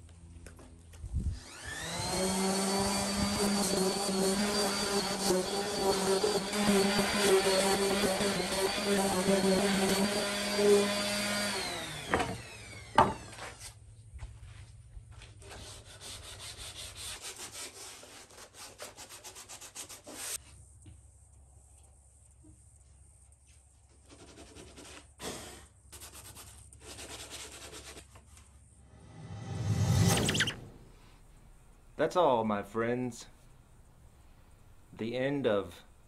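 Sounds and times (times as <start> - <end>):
electric motor whine: 1.2 - 13.6
sandpaper rubbing on wood: 2.2 - 10.9, 15.5 - 20.4, 26.0 - 28.2.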